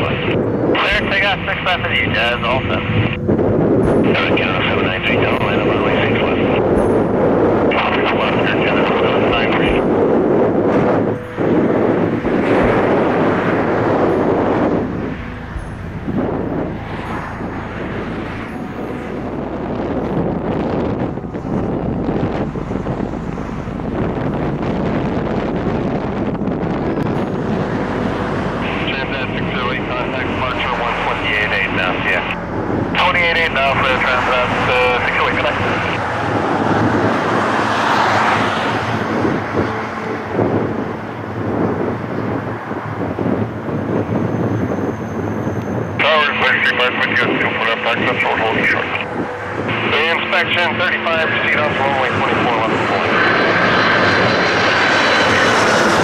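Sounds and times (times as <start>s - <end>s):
radio voices: 0.0s - 3.2s, 7.7s - 9.7s, 28.6s - 36.1s, 46.0s - 53.9s
jet engines of landing airliner: 0.0s - 56.0s
wind buffeting microphone: 0.0s - 56.0s.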